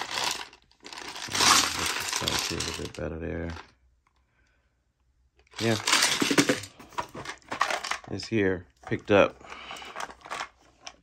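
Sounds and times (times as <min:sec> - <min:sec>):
screws rattling in plastic box: 0:00.0 - 0:03.6, 0:05.6 - 0:08.1, 0:08.8 - 0:11.0
plastic cases clattering: 0:00.0 - 0:03.7, 0:05.5 - 0:11.0.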